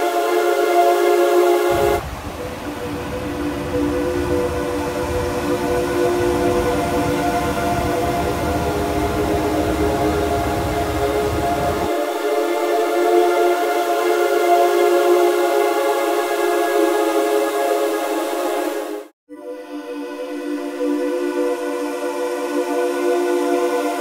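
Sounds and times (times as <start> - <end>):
droning chord music: 0.0 - 24.0
low rumbling noise: 1.7 - 11.9.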